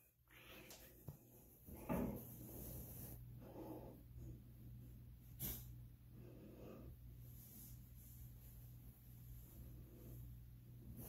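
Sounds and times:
faint breathing: 0.2 - 4.6, 5.9 - 8.3.

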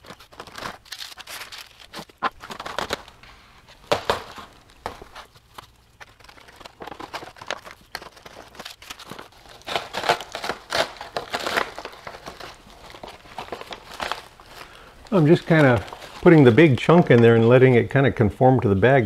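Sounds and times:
plastic bag crinkling: 0.0 - 17.8.

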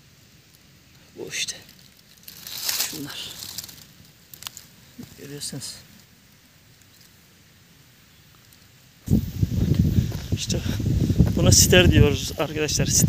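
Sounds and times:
wind buffeting microphone: 9.1 - 13.0.

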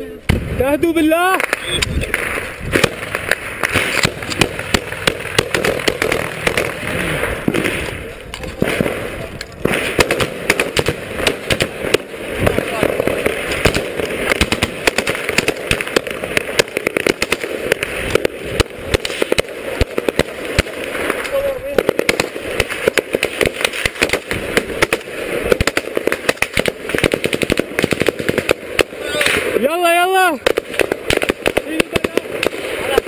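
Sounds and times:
small-arms gunfire: 1.3 - 7.9, 9.6 - 29.6, 30.4 - 33.0
voices: 2.9 - 9.8, 11.1 - 13.4, 28.9 - 30.5, 31.6 - 33.0.

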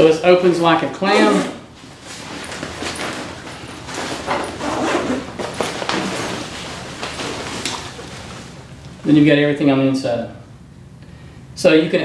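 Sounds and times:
fabric rustling: 1.0 - 9.2
zipper pulls: 1.1 - 8.6.

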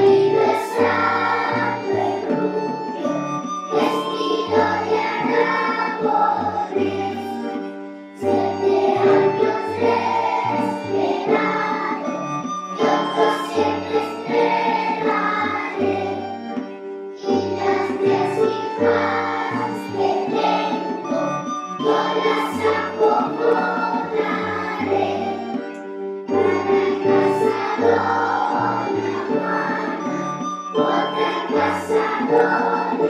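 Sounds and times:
children singing together: 0.0 - 33.0.

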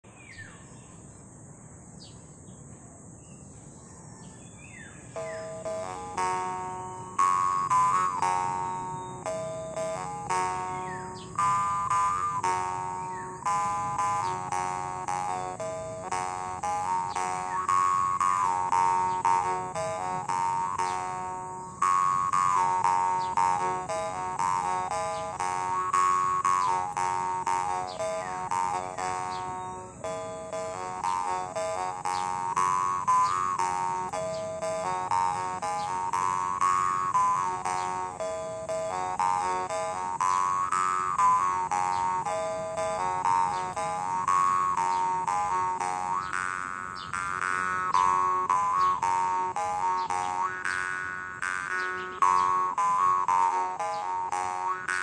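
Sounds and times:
birds chirping: 0.0 - 55.0
high insect drone: 0.0 - 55.0
jaw harp plucked: 5.1 - 55.0.

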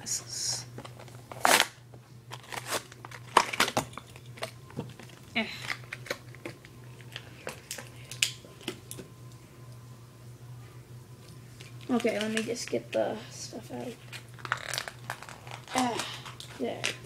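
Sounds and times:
blister packaging crackling: 0.8 - 8.4, 14.0 - 17.0.

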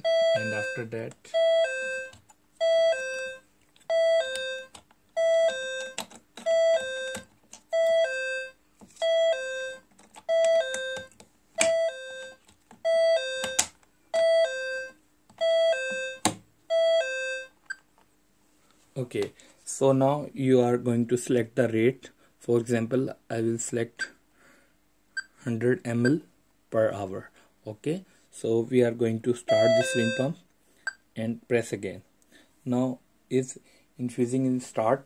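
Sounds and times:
two-note electronic alarm chime: 0.0 - 7.2, 7.8 - 13.6, 14.2 - 17.6, 29.5 - 30.4.

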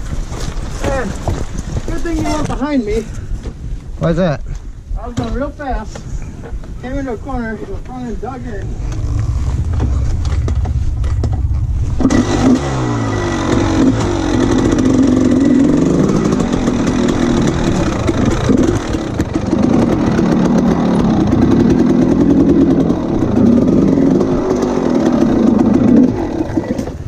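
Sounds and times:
dirt bike engine running: 7.3 - 27.0.

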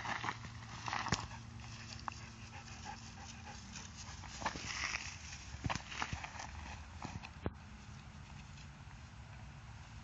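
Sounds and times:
fox panting: 1.1 - 5.4.

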